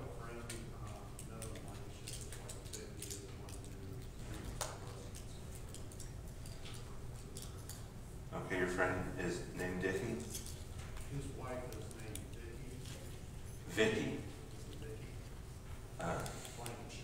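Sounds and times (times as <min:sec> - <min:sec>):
faint speech across a room: 0:00.0 - 0:17.0
small clicks and taps: 0:00.4 - 0:07.9, 0:11.7 - 0:13.0.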